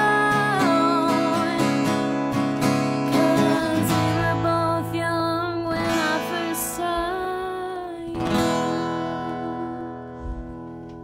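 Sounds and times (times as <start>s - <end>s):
acoustic guitar chord strummed: 0.0s - 11.0s.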